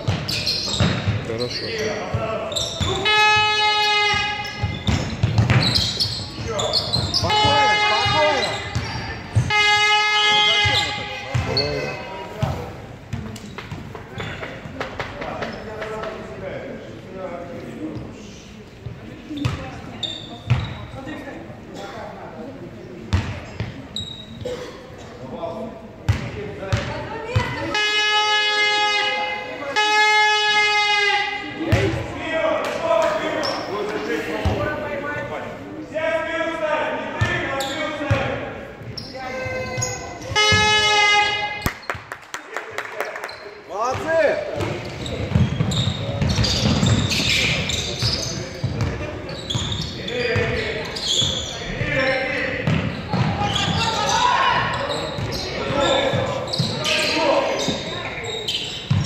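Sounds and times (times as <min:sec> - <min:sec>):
ball bouncing on hardwood court: 0:00.0 - 0:01.3, 0:04.5 - 0:09.6, 0:11.3 - 0:11.6, 0:12.4 - 0:16.1, 0:43.9 - 0:49.8, 0:52.6 - 0:54.1
shoes squeaking on court: 0:00.0 - 0:09.7, 0:10.4 - 0:16.2, 0:17.9 - 0:21.0, 0:23.1 - 0:24.6, 0:33.2 - 0:35.3, 0:37.2 - 0:41.0, 0:43.1 - 0:59.0
people shouting: 0:53.4 - 0:54.8.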